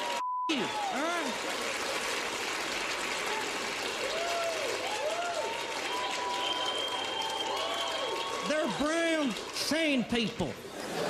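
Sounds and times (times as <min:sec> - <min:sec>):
audience applauding: 0:00.0 - 0:11.0
audience laughing: 0:10.6 - 0:11.0.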